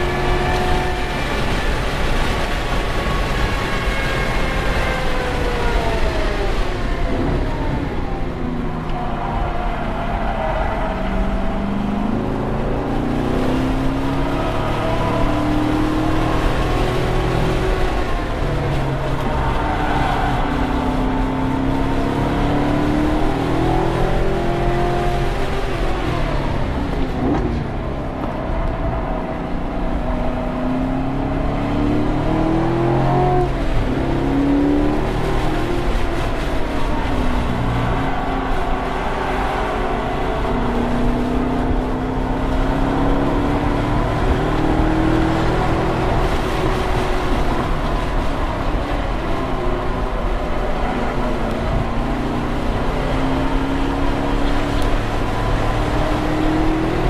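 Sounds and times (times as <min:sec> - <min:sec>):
car engine accelerating: 0:00.0 - 0:57.0
road and wind noise: 0:00.0 - 0:57.0.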